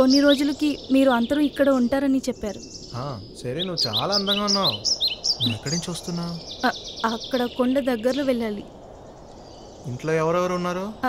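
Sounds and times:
small birds chirping: 0.0s - 11.0s
man's drawn-out voice: 3.0s - 4.8s, 5.4s - 6.4s, 9.9s - 11.0s.

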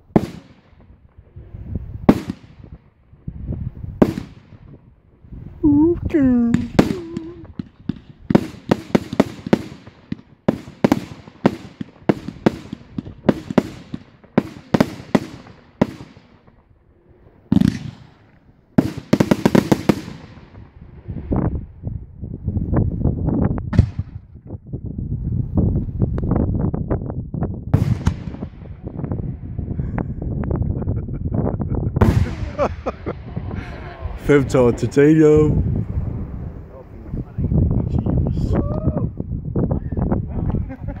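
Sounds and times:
fireworks bangs: 0.0s - 5.2s, 6.1s - 21.8s, 23.7s - 24.4s, 27.7s - 29.8s, 32.0s - 38.5s
crackling firework bursts: 0.0s - 5.5s, 6.4s - 21.8s, 32.0s - 36.8s.

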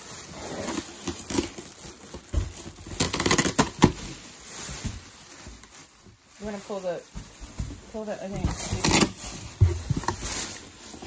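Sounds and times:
plastic wrapping crinkling: 0.0s - 11.0s.

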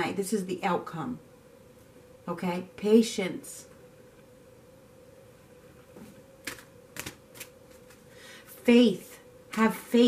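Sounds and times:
faint steady hum: 0.0s - 10.0s
crisp card clicks: 6.4s - 8.0s.

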